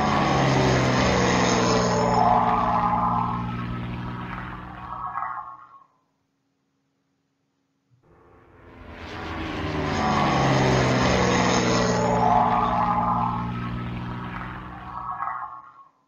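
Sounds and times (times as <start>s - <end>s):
propeller airplane flying past: 0.0s - 5.8s, 8.1s - 15.8s.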